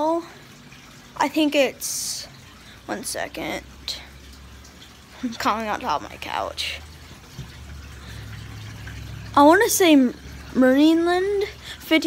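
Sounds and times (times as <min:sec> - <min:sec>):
aquarium filter humming: 0:00.0 - 0:12.0
faint running water: 0:00.0 - 0:12.0.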